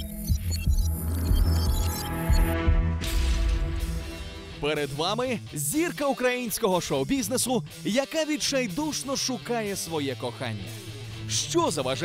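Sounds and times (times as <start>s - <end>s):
tv theme music: 0.0s - 12.0s.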